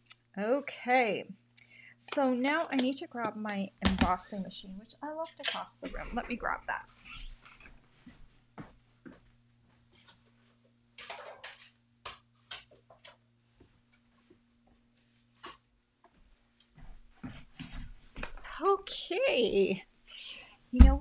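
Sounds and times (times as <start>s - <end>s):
low steady hum: 0.0s - 21.0s.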